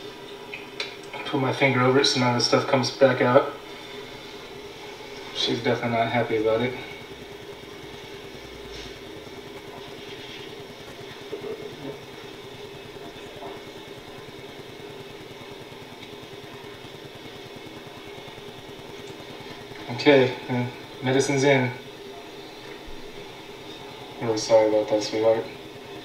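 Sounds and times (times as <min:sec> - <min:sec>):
low background hum: 0:00.0 - 0:26.0.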